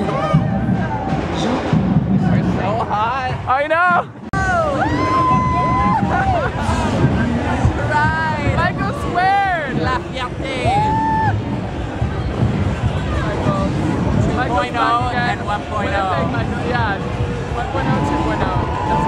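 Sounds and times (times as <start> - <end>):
babble of many voices: 0.0 - 19.0
music: 0.0 - 19.0
people whooping and shouting: 4.4 - 7.0, 10.6 - 11.5, 17.6 - 19.0.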